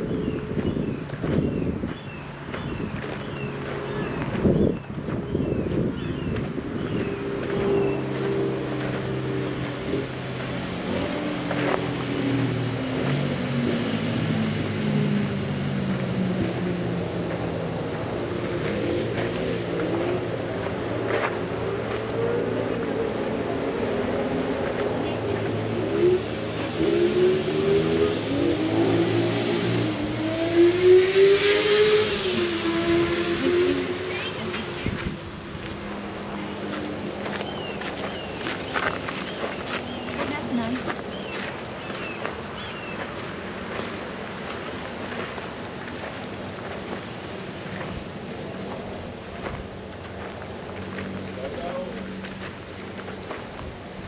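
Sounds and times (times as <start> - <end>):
engine running with changing revs: 0.0 - 54.0.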